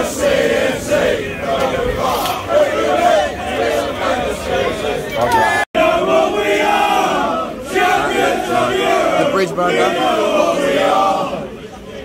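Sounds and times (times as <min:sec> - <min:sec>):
crowd of men chanting: 0:00.0 - 0:12.0.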